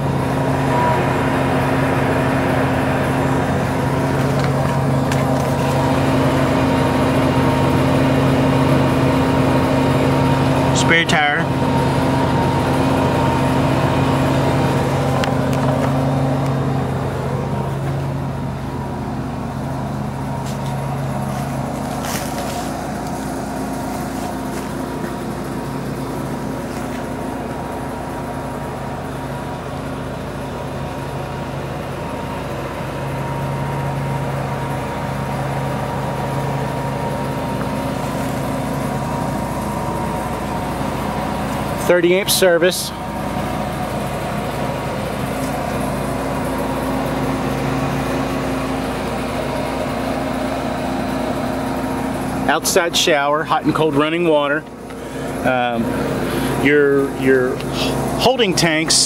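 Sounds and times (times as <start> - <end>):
engine humming: 0.0 - 59.0.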